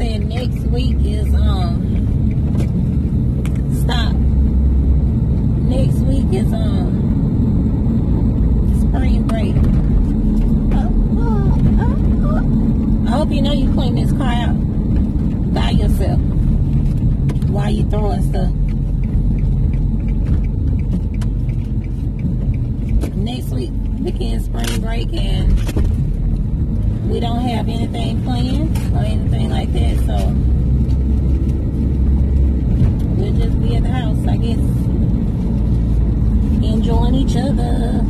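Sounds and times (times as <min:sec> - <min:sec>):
road and engine rumble in car: 0:00.0 - 0:38.0.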